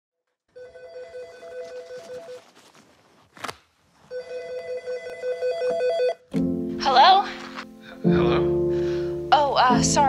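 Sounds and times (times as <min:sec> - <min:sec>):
telephone ringing in warbling trill: 0:00.6 - 0:02.4.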